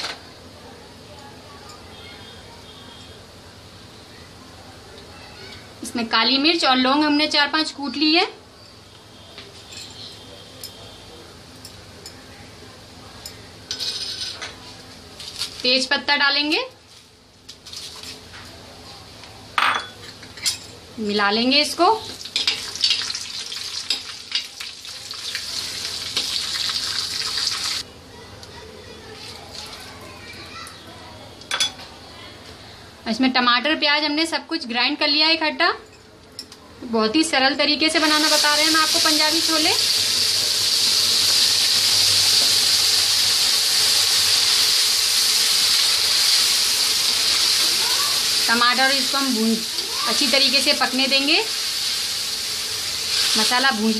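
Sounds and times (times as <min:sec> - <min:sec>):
leaves frying in hot oil: 0:13.2 - 0:19.4, 0:20.9 - 0:27.9, 0:29.1 - 0:31.2, 0:37.1 - 0:53.9.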